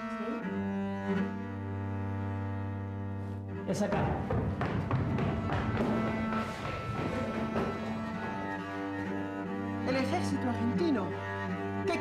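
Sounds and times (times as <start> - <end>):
low bowed strings: 0.0 - 12.0.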